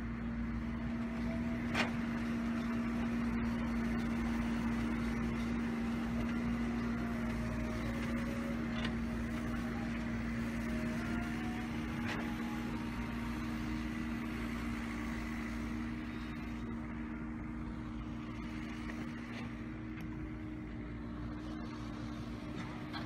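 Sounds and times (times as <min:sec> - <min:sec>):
heavy machinery engine running: 0:00.0 - 0:23.0.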